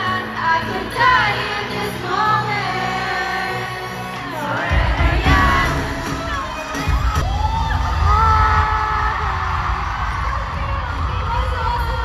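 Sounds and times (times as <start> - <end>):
crowd screaming and cheering: 0.0 - 12.0
live pop music with bass beat: 0.0 - 12.0.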